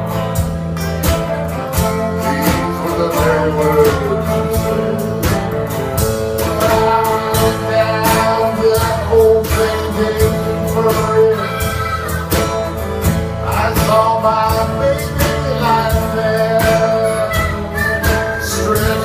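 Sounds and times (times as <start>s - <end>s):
bending lead melody: 0.0s - 19.0s
electric bass: 0.0s - 19.0s
strummed acoustic guitars: 0.0s - 19.0s.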